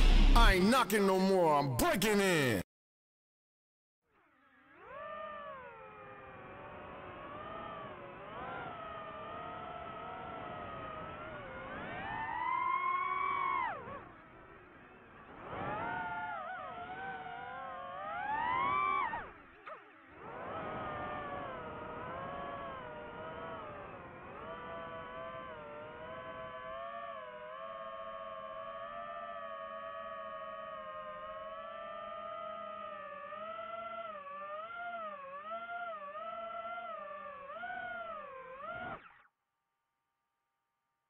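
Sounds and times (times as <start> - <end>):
drone propellers whining: 4.1 - 39.3.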